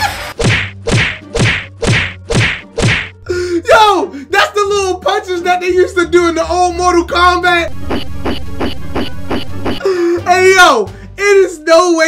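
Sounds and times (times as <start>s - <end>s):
punch sound effects: 0.4s - 3.2s.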